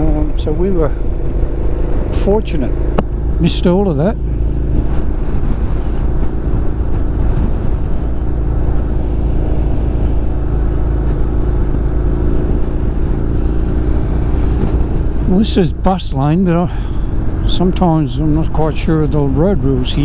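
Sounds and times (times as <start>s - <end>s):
motorcycle engine cruising: 0.0s - 20.0s
wind and road noise: 0.0s - 20.0s.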